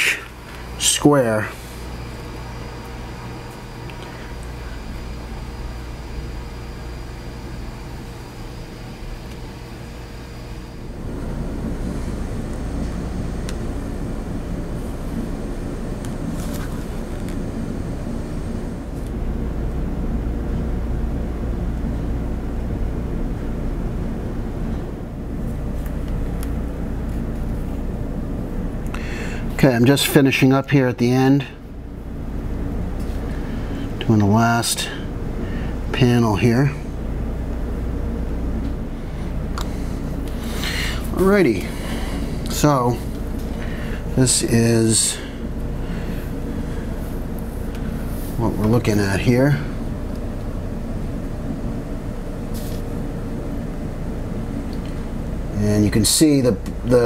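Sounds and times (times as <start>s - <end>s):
low rumbling machine hum: 0.0s - 57.0s.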